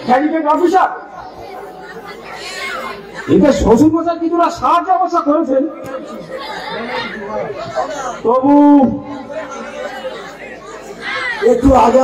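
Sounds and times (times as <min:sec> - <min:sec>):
low indistinct chatter: 0:00.0 - 0:12.0.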